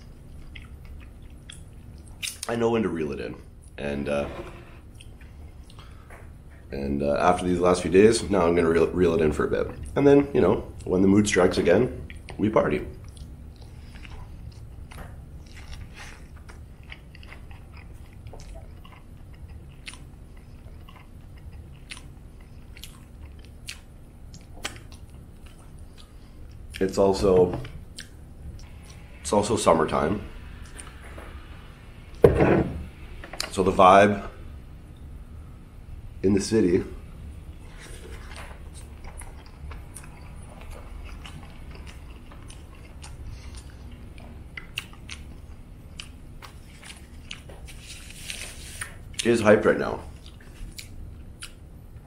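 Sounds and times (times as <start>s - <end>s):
person chewing food: 0.0s - 2.5s, 13.0s - 26.9s, 27.6s - 29.0s, 37.6s - 49.2s, 50.1s - 51.7s.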